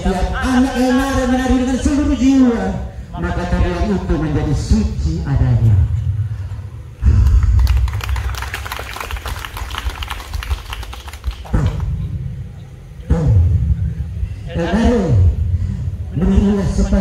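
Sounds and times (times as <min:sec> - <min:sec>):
steady low rumble: 0:00.0 - 0:17.0.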